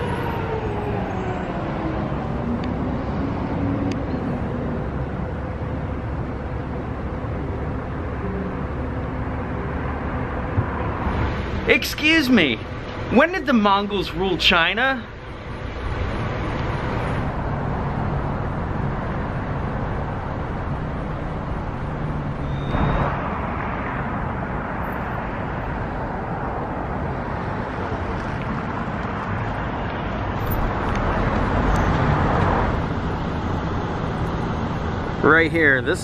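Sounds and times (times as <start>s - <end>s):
road traffic noise: 0.0s - 36.0s.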